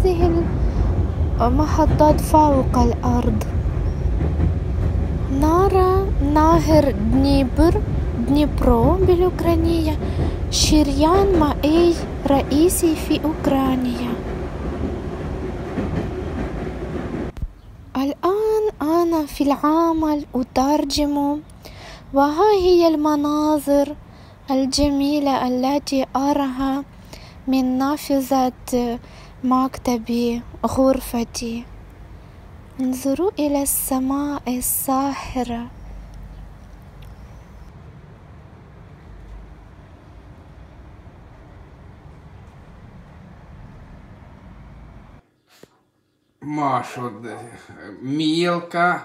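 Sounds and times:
train wheels rumbling on rails: 0:00.0 - 0:21.6
distant city traffic rumble: 0:00.0 - 0:49.0.

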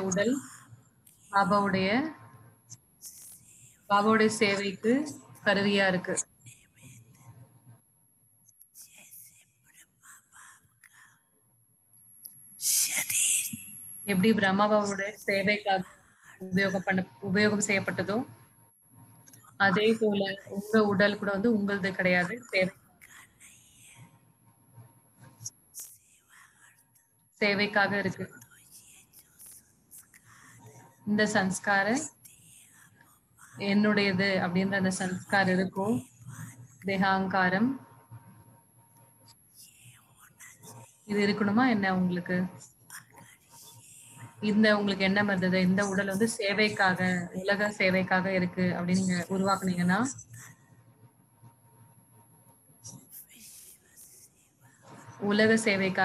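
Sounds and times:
person speaking: 0:00.0 - 0:00.6, 0:01.2 - 0:02.2, 0:03.1 - 0:07.0, 0:12.6 - 0:18.3, 0:19.3 - 0:24.0, 0:27.4 - 0:32.8, 0:33.4 - 0:37.8, 0:39.6 - 0:50.5, 0:54.9 - 0:56.0
faint breathy whisper: 0:00.0 - 0:07.6, 0:08.5 - 0:11.3, 0:12.3 - 0:24.2, 0:24.8 - 0:50.9, 0:52.8 - 0:56.0.

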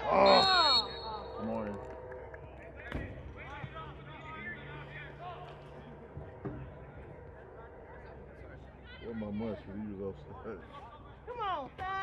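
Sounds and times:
distant shouts and calls: 0:00.0 - 0:01.5.

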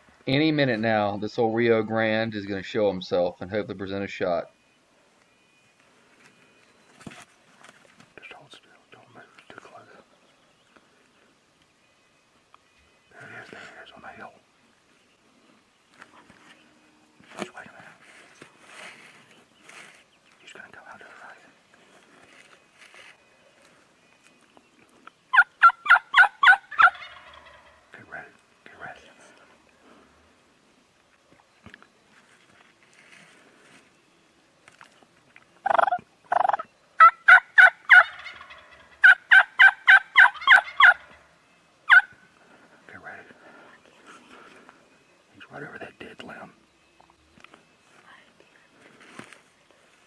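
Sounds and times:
turkey gobbling: 0:25.3 - 0:27.9, 0:35.6 - 0:41.3, 0:41.9 - 0:42.2.

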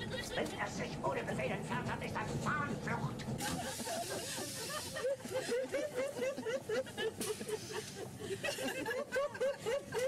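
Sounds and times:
people chattering and giggling: 0:00.0 - 0:00.9, 0:03.3 - 0:10.0.

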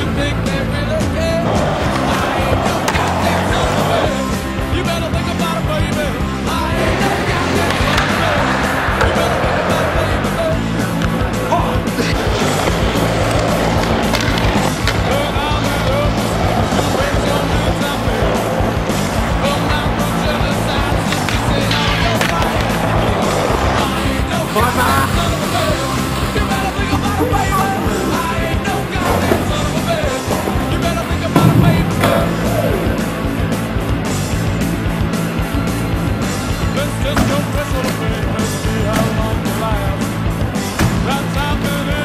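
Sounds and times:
background music: 0:00.0 - 0:42.0
skateboard clack: 0:00.0 - 0:42.0
skateboard grinding on metal rail: 0:00.8 - 0:04.4, 0:06.5 - 0:33.1.

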